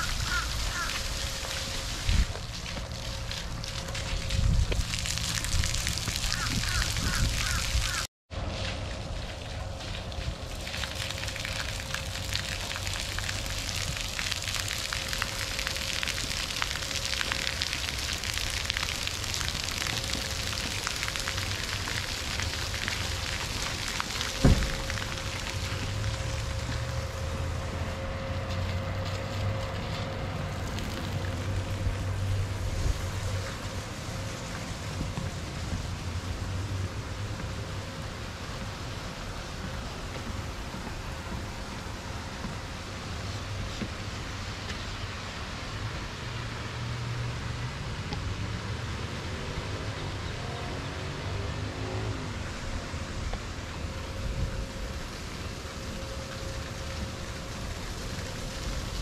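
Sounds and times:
water jets spraying on wet concrete: 0.0s - 59.0s.

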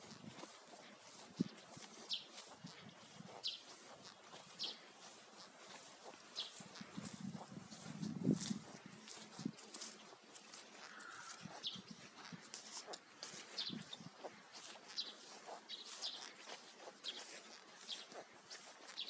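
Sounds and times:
small birds chirping: 0.0s - 19.0s.

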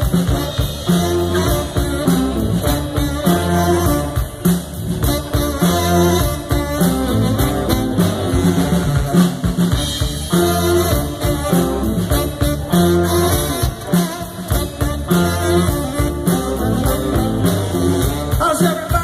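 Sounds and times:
drum kit steady beat: 0.0s - 19.0s
electric bass: 0.0s - 19.0s
saxophone lead: 0.0s - 19.0s.

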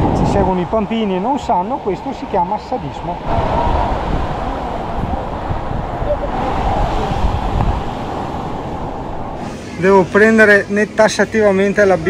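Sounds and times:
wind buffeting microphone: 0.0s - 9.7s
surf washing up on sand: 0.0s - 11.0s.

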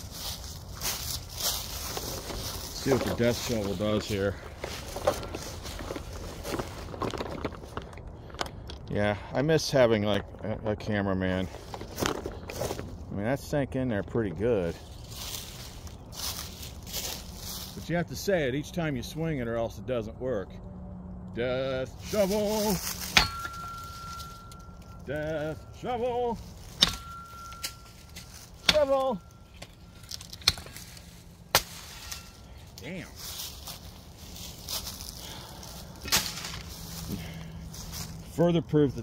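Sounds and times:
footsteps in dry leaves: 0.0s - 7.9s, 14.6s - 18.4s, 21.9s - 39.0s
steel blade ringing: 23.1s - 30.7s
shovel chopping into sapling: 31.5s - 32.3s.

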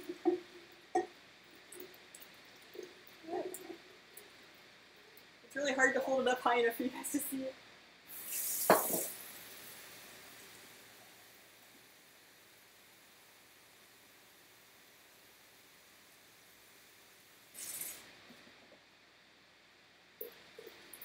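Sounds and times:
brief hissing noise: 8.1s - 9.3s, 17.5s - 18.1s.

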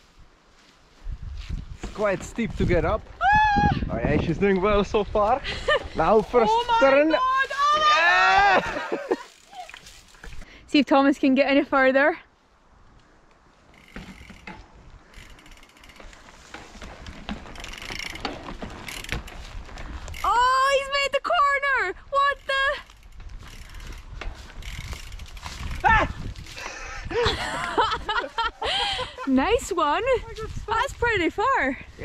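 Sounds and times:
bike tyres rolling over grass: 0.0s - 10.5s, 11.2s - 32.0s
high voice exclaiming: 6.4s - 8.8s
bike freewheel hub ticking: 9.2s - 10.4s, 13.7s - 20.9s, 22.2s - 26.6s.

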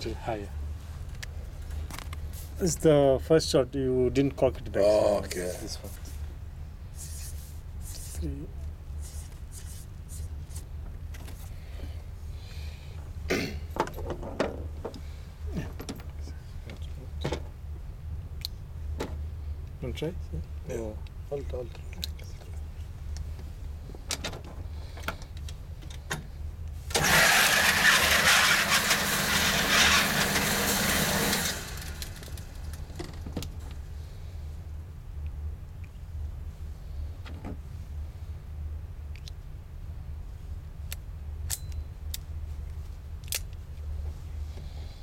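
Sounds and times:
steady low hum: 0.0s - 45.0s
target carrier motor running: 26.9s - 33.4s.

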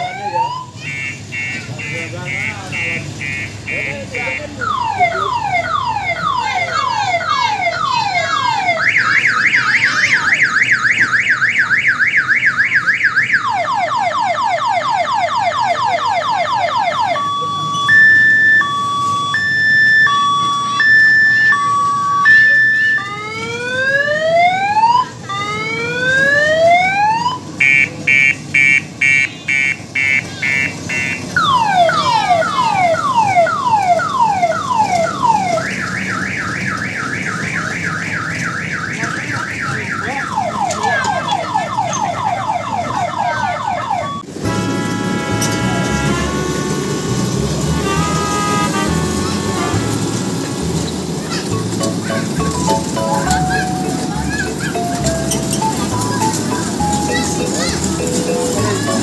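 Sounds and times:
electronic multi-tone siren: 0.0s - 49.9s.

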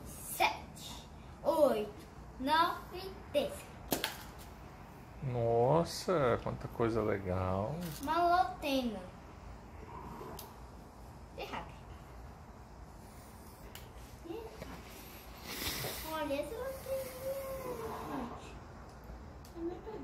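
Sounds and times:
child's voice: 0.0s - 3.8s, 7.9s - 9.2s, 11.4s - 11.8s, 14.2s - 14.8s, 16.0s - 18.6s.

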